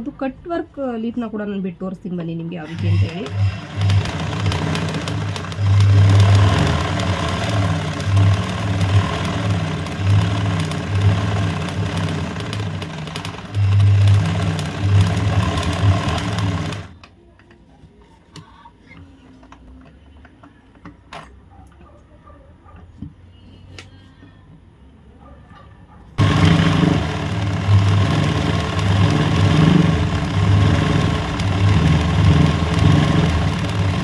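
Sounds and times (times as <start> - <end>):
sewing machine running: 2.6 - 17.0, 26.2 - 34.0.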